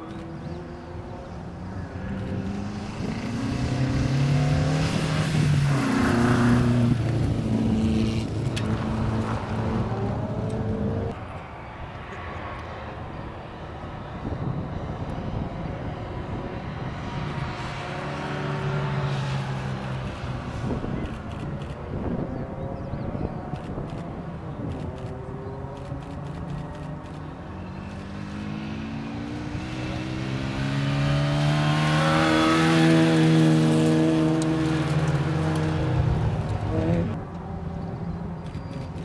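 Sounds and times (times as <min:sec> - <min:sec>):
rally car engines revving: 0:00.0 - 0:11.2, 0:14.8 - 0:39.0.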